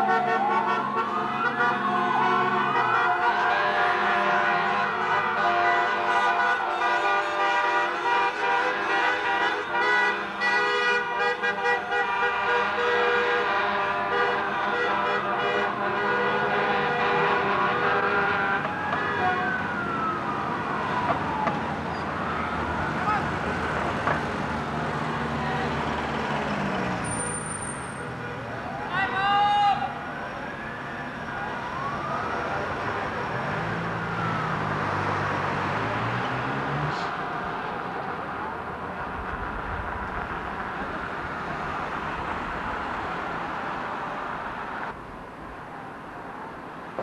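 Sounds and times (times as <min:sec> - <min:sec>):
vehicle horns blaring: 0:00.0 - 0:19.6
fire engine siren wailing: 0:00.0 - 0:39.2.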